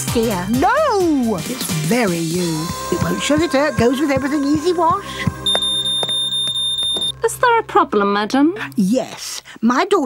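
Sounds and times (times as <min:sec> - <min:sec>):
background music: 0:00.0 - 0:10.0
security alarm tone: 0:05.3 - 0:07.2.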